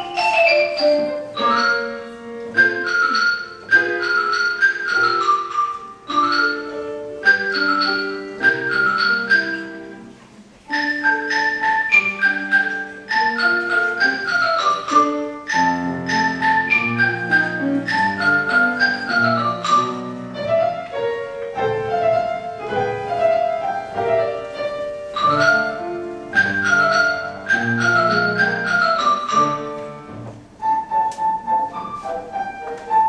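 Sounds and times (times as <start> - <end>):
xylophone melody: 0.0 - 20.6, 23.1 - 32.0
piano accompaniment: 0.0 - 33.0.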